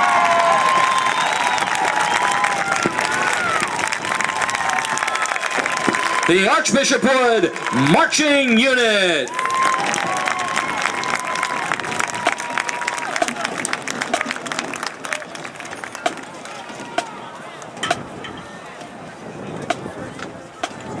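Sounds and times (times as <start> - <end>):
crowd clapping and cheering: 0.0 - 18.9
crowd chatter: 0.0 - 21.0.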